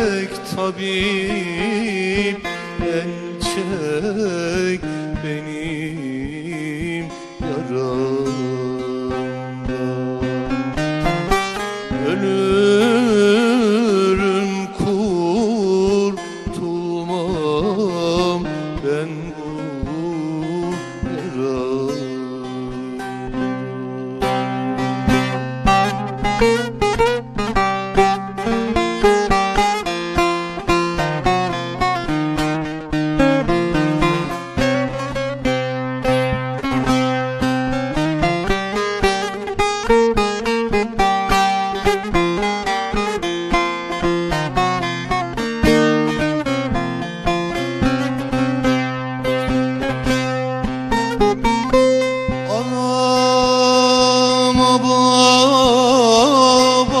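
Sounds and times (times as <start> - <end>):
long-necked lute melody over drone: 0.0 - 57.0.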